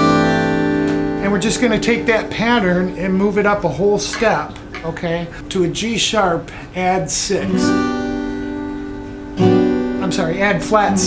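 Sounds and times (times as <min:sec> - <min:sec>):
acoustic guitar strum: 0:00.0 - 0:05.0, 0:07.4 - 0:11.0.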